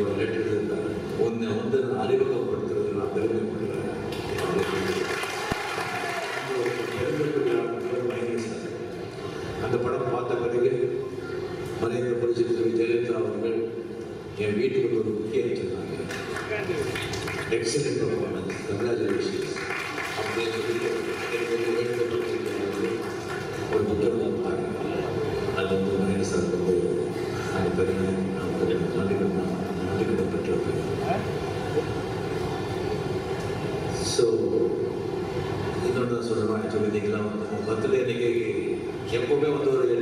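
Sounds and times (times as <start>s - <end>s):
man giving a speech over loudspeakers: 0.0s - 5.3s, 6.0s - 9.0s, 9.6s - 11.1s, 11.8s - 31.4s, 35.8s - 40.0s
crowd noise in large hall: 0.0s - 40.0s.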